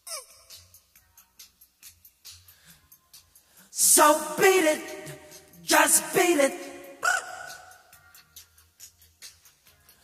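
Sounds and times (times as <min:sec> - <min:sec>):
man singing high note: 0:03.8 - 0:07.9.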